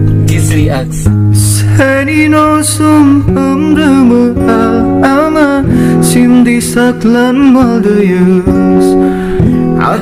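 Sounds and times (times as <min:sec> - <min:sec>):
acoustic guitar: 0:00.0 - 0:10.0
man singing: 0:00.4 - 0:10.0.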